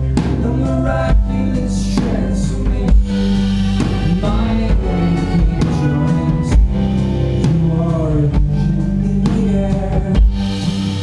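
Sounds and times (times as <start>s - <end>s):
bowed violin: 0.0s - 11.0s
drums: 0.0s - 11.0s
electric guitar: 0.0s - 11.0s.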